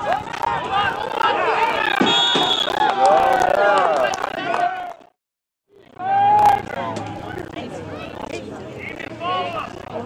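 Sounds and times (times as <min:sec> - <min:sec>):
spectators shouting and cheering: 0:00.0 - 0:05.0, 0:06.0 - 0:07.9
referee's whistle: 0:01.9 - 0:02.9.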